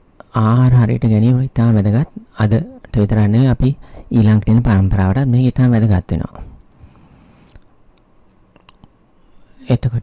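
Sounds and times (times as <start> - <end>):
man speaking: 0.3 - 6.5.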